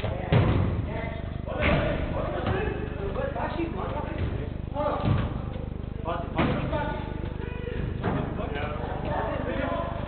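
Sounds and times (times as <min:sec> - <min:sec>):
football kicked with a thud: 0:00.1 - 0:00.9.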